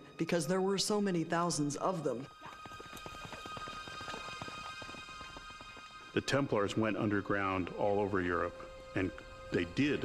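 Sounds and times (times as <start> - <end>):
background music with held tones: 0.0 - 10.0
horse hooves galloping: 1.5 - 8.1.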